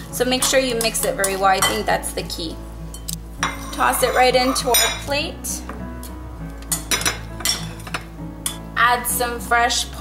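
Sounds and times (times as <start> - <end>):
background music: 0.0 - 10.0
glass and utensils clinking: 3.0 - 5.2, 6.7 - 8.6.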